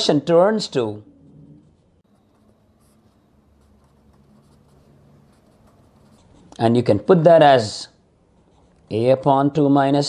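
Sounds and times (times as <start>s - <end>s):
pen scratching on paper: 1.6s - 6.5s.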